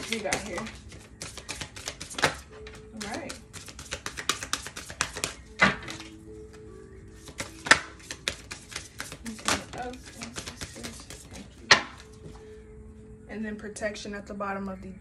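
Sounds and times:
cards being shuffled: 0.0s - 6.2s, 7.1s - 12.4s
cards slapping together: 0.0s - 6.2s, 7.2s - 12.1s.

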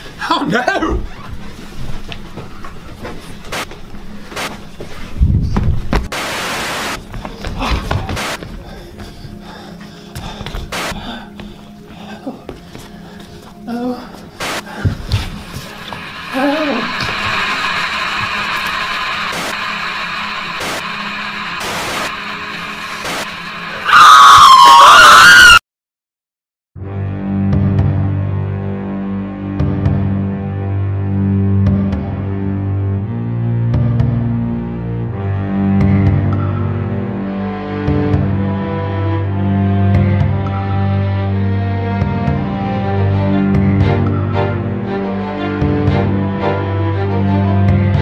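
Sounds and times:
eerie drone: 6.2s - 25.6s
loud wavering scream: 16.1s - 25.6s.

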